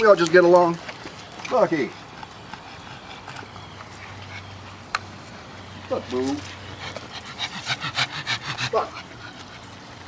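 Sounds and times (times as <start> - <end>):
faint footsteps on brick pavers: 0.0 - 7.7.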